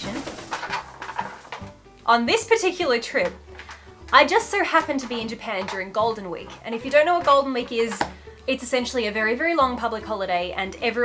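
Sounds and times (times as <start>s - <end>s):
parrot wings fluttering: 0.0s - 1.7s.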